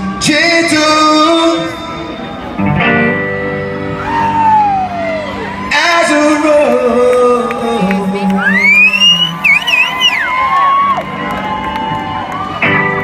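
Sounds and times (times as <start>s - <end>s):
live rock band playing: 0.0s - 7.1s, 9.4s - 13.0s
crowd cheering and whooping: 3.6s - 13.0s.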